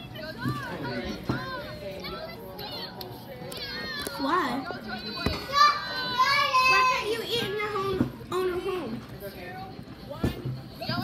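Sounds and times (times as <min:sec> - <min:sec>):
children talking and calling out: 0:00.0 - 0:09.1, 0:10.7 - 0:11.0.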